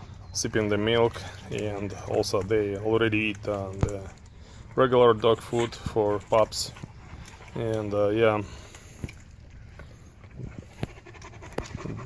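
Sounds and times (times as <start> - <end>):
puppies suckling: 0.0 - 12.0
sharp wet smacks: 0.5 - 7.9
panting breaths: 8.4 - 12.0.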